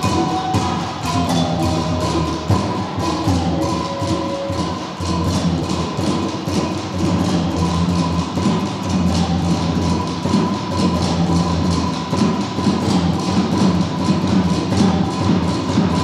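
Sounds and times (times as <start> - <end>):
djembe struck by hand: 0.0 - 16.0
snare drums played with sticks: 0.0 - 16.0.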